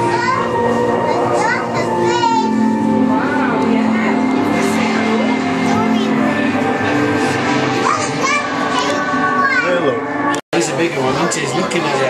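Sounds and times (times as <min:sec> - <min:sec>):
children chattering: 0:00.0 - 0:10.0
background music: 0:00.0 - 0:12.0.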